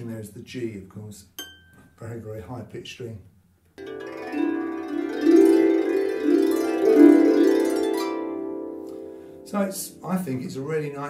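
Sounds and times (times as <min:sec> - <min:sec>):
harp being plucked: 0:03.8 - 0:10.0.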